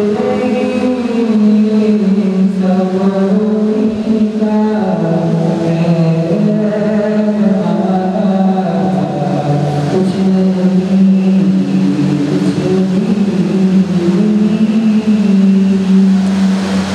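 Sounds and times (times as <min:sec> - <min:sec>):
young man singing devotional song: 0:00.0 - 0:16.9.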